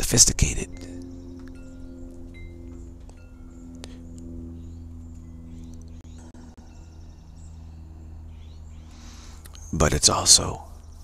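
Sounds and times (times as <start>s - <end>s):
steady low drone: 0.0s - 11.0s
chimes ringing: 0.6s - 5.5s.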